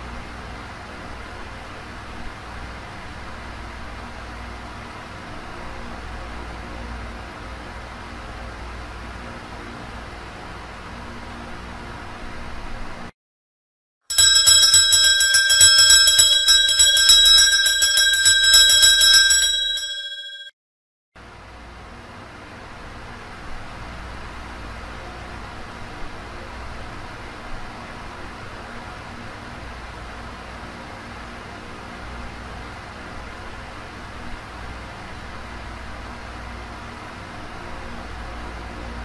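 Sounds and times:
small bells jingling: 14.1s - 20.5s.

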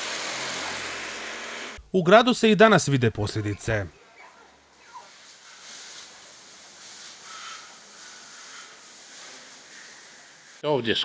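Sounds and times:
tyres hissing on wet road: 5.1s - 10.7s.

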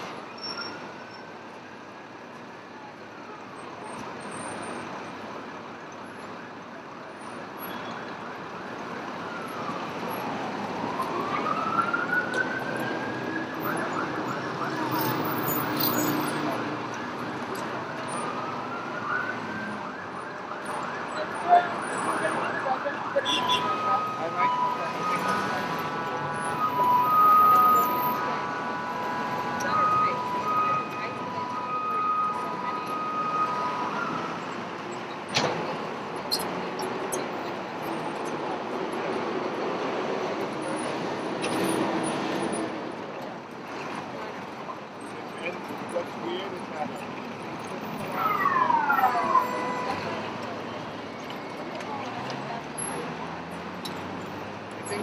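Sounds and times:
street traffic noise: 0.0s - 55.0s
emergency vehicle siren: 2.0s - 43.5s, 44.7s - 55.0s.

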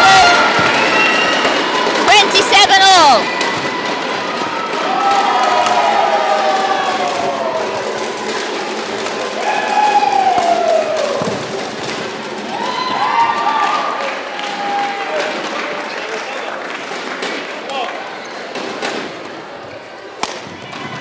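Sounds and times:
scattered claps: 3.2s - 19.2s.

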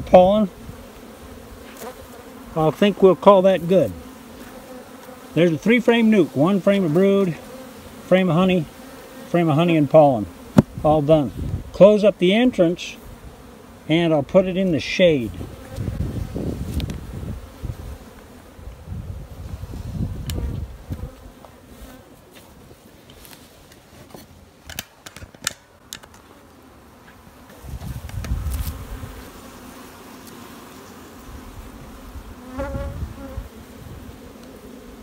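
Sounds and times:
honeybees buzzing: 0.0s - 24.6s, 25.6s - 35.0s.

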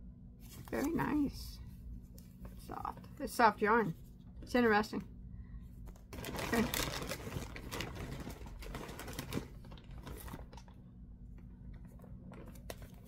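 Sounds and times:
low room hum: 0.0s - 13.0s.

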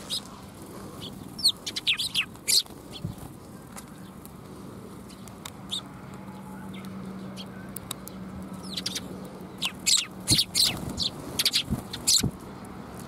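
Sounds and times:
sparrows chirping: 0.0s - 13.0s.

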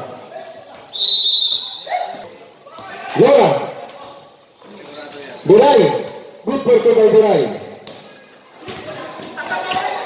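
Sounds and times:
referee's whistle blast: 0.9s - 1.9s.

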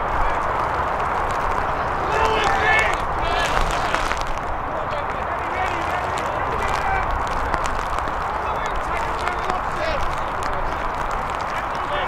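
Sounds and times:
players shouting: 0.0s - 12.0s
wind on microphone: 0.0s - 12.0s.

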